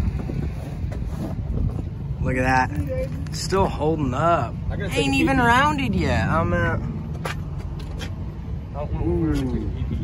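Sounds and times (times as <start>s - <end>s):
wind buffeting microphone: 0.0s - 3.7s.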